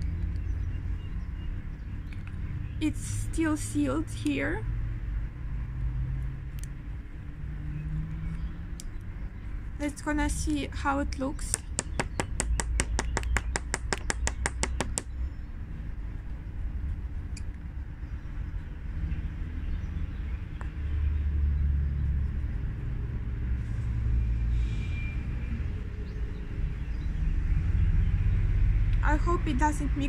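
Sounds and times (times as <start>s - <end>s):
low outdoor rumble: 0.0s - 30.0s
rapid sharp clicks: 11.5s - 15.1s.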